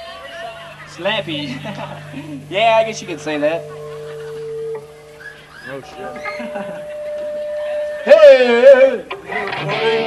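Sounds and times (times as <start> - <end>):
steady held tone: 0.0 - 9.2.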